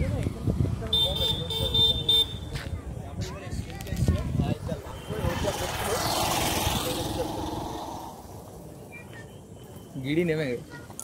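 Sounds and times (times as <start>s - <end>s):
voices talking: 0.0s - 11.0s
vehicle passing by: 4.4s - 8.8s.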